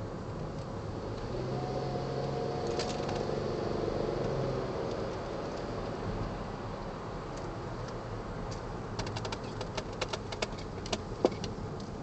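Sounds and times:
road rumble in car cabin: 0:00.0 - 0:12.0.

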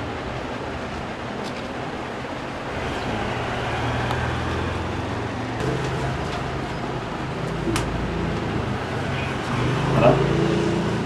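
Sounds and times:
road traffic rumble and hiss: 0:00.0 - 0:11.0.

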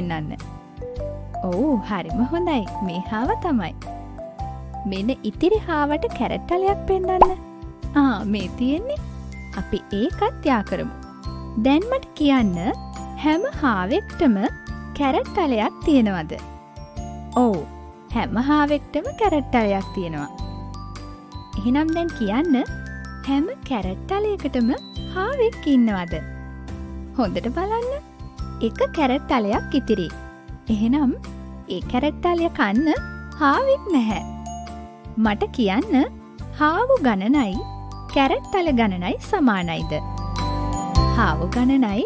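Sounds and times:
children's background music: 0:00.0 - 0:42.0
cartoon plop: 0:07.1 - 0:07.4.

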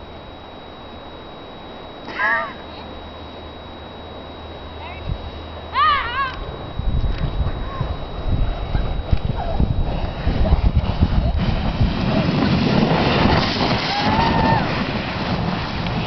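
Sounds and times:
person squealing: 0:02.1 - 0:02.8
snow tube sliding rumble: 0:06.8 - 0:16.0.

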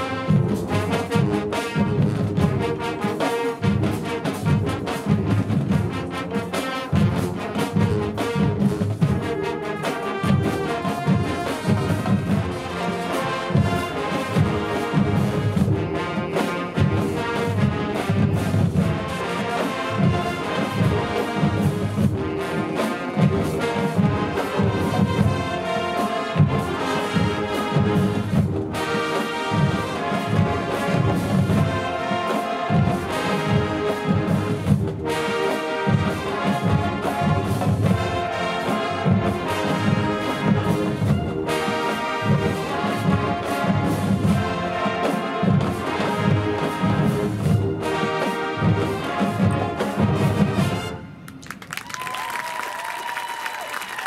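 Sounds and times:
steady drum beat: 0:00.0 - 0:51.0
marching band playing: 0:00.0 - 0:54.0.

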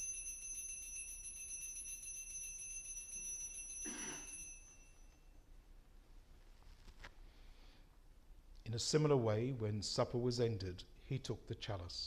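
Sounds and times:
altar bells chiming: 0:00.0 - 0:05.4.

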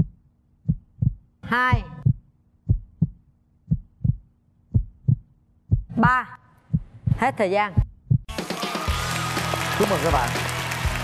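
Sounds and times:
heartbeat thumps: 0:00.0 - 0:08.3.

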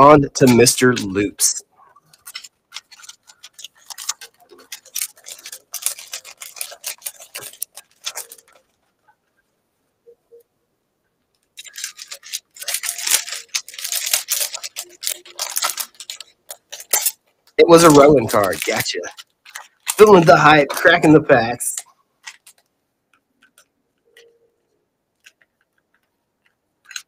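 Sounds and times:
plastic wrapper crinkling: 0:00.4 - 0:09.4, 0:11.3 - 0:24.3, 0:25.1 - 0:27.0.

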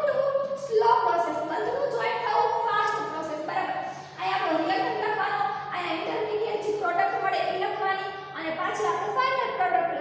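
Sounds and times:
woman talking: 0:00.0 - 0:10.0.

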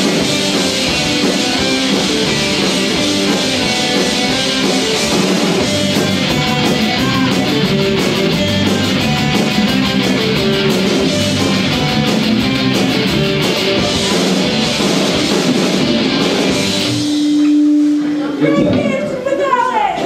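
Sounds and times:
punk rock band playing live: 0:00.0 - 0:20.0.

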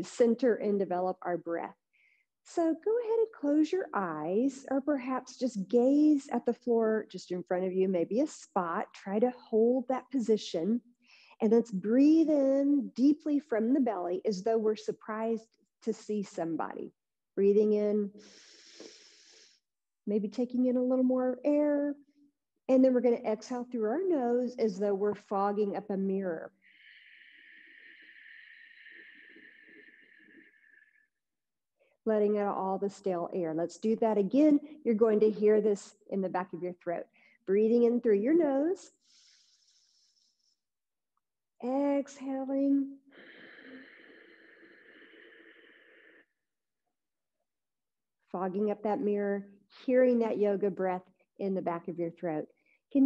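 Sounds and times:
woman breathing in deeply: 0:26.6 - 0:31.1, 0:43.1 - 0:46.4.

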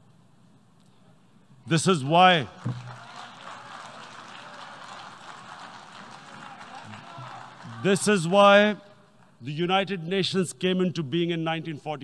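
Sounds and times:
man giving speech: 0:01.7 - 0:02.7, 0:07.7 - 0:12.0
audience applauding: 0:02.6 - 0:09.4.

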